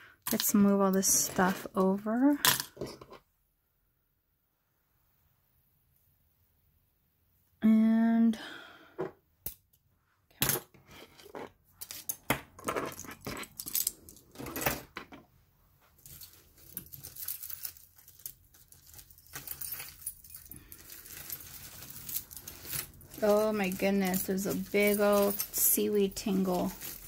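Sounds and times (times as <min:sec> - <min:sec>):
metal jewelry jingling on wood: 0:11.8 - 0:14.7, 0:16.0 - 0:27.0.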